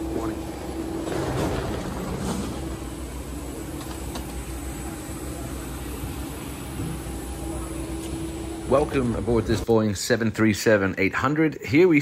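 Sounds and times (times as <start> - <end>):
airliner rushing drone: 0.0 - 9.6.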